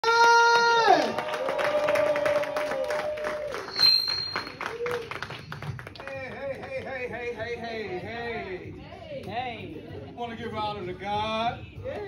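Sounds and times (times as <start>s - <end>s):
audience clapping: 0.0s - 7.4s.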